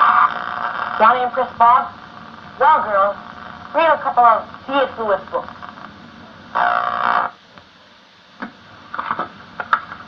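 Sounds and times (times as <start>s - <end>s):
tape hiss: 0.0s - 10.0s.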